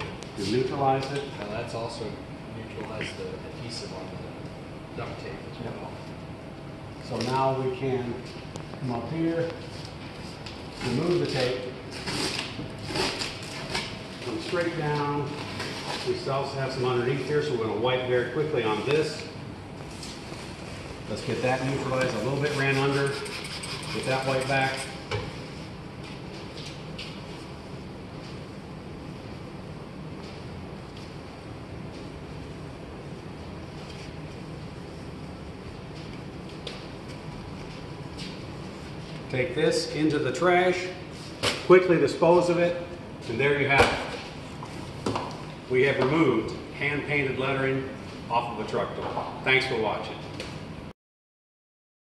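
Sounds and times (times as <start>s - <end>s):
duct tape peeling: 9.8s - 14.0s.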